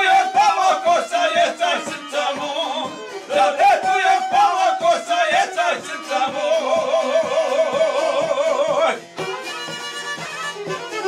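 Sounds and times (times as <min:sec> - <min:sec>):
men singing together: 0:00.0 - 0:09.1
violin playing: 0:00.0 - 0:11.0.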